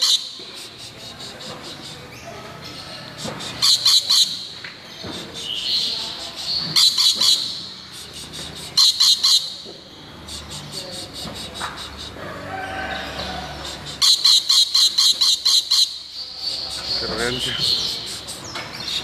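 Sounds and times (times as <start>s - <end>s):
lorikeet chattering calls: 0.0s - 19.0s.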